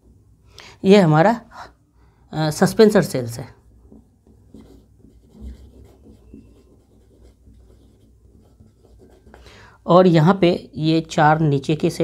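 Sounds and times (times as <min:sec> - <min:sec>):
marker pen scratching on whiteboard: 0:03.8 - 0:09.5.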